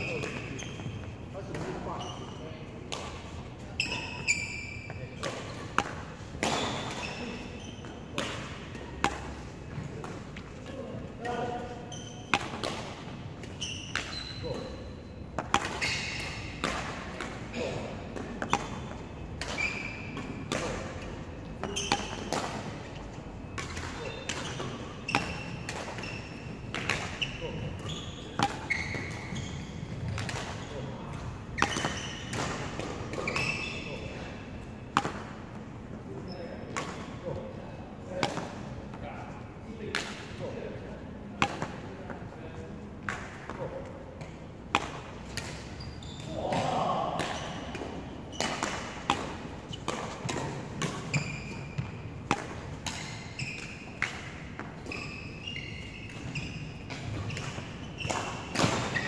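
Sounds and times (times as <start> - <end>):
shoes squeaking on wooden floor: 0.0 - 2.4, 3.8 - 5.2, 11.9 - 12.3, 13.6 - 14.8, 15.8 - 16.6, 19.1 - 20.2, 23.4 - 26.6, 27.2 - 30.8, 33.2 - 34.1, 45.6 - 47.5, 51.0 - 52.0, 53.0 - 53.9, 54.8 - 59.0
racket hitting shuttlecock: 5.2 - 10.4, 12.0 - 14.7, 15.4 - 21.0, 21.6 - 34.0, 34.9 - 35.6, 38.2 - 38.7, 41.4 - 41.8, 43.0 - 55.0, 55.7 - 59.0.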